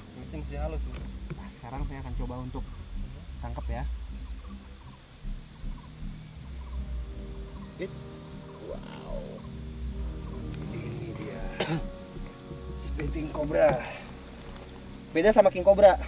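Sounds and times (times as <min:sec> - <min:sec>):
insects chirring: 0:00.0 - 0:16.0
soft background music: 0:00.0 - 0:16.0.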